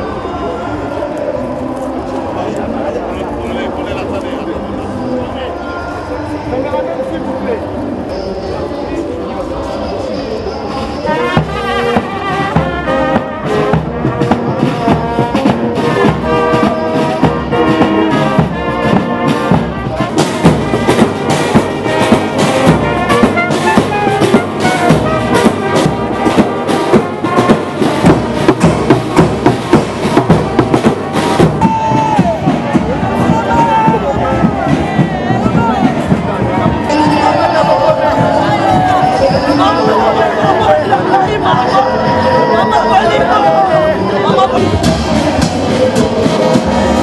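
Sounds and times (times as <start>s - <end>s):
brass horns playing: 10.2s - 47.0s
snare drums: 11.0s - 42.2s, 43.4s - 47.0s.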